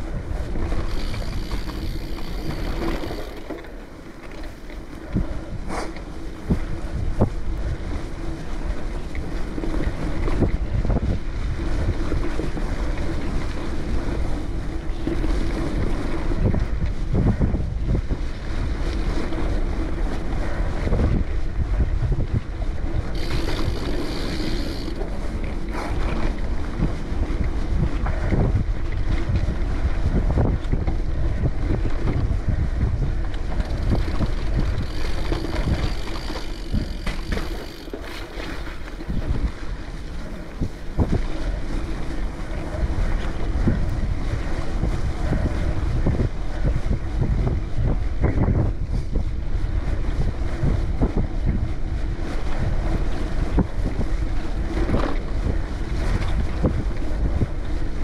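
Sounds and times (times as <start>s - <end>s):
bike tyres rolling on dirt: 0.0s - 58.0s
wind buffeting microphone: 0.0s - 58.0s
bike knocks and rattles: 0.4s - 6.7s, 23.1s - 26.4s, 33.1s - 39.4s.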